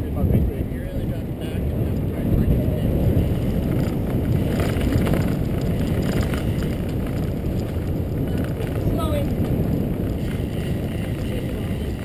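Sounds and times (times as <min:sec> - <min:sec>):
wind buffeting microphone: 0:00.0 - 0:12.0
tyres rolling on asphalt: 0:00.1 - 0:12.0.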